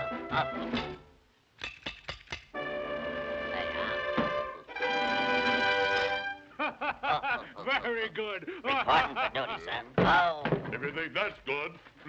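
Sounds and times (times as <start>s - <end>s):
orchestral cartoon music: 0.0s - 1.2s, 2.5s - 6.6s
sharp percussive strikes: 1.6s - 2.6s
sustained orchestral chord: 2.6s - 4.0s, 4.7s - 6.4s.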